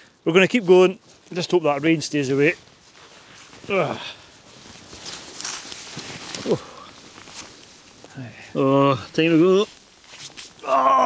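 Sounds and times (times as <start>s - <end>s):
backpack rustling and clicking: 2.4s - 8.2s, 9.7s - 10.6s
person groaning with effort: 10.6s - 11.0s.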